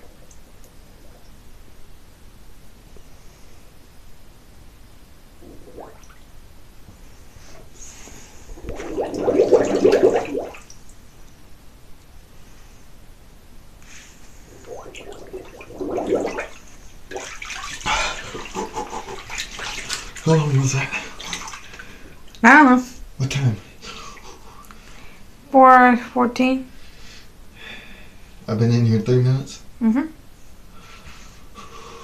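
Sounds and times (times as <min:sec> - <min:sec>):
air bubbling through bathwater: 0:05.4 - 0:06.4, 0:08.3 - 0:10.8, 0:14.4 - 0:21.9
water splashing and sloshing: 0:05.4 - 0:06.4, 0:08.4 - 0:10.9, 0:14.4 - 0:22.2.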